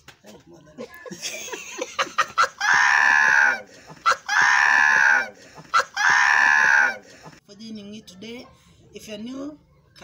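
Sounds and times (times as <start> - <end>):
man shrieking laughter: 2.2 - 7.0.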